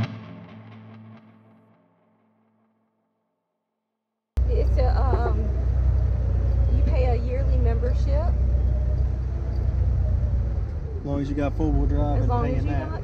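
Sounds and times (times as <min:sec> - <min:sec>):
vehicle rumble inside cab: 0:04.4 - 0:13.0
voices: 0:04.4 - 0:13.0.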